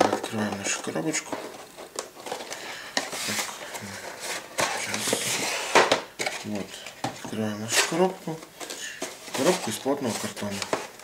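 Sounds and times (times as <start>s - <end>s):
cardboard rustling and scraping: 0.0s - 11.0s.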